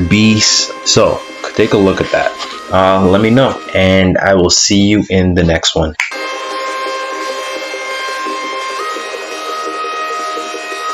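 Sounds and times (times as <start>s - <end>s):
synthesizer drone: 0.0s - 5.4s, 6.1s - 10.9s.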